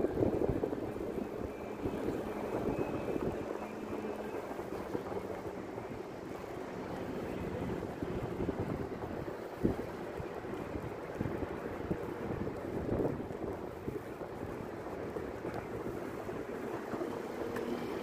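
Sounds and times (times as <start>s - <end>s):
low rumble of traffic: 0.0s - 18.0s
wind buffeting microphone: 0.0s - 18.0s.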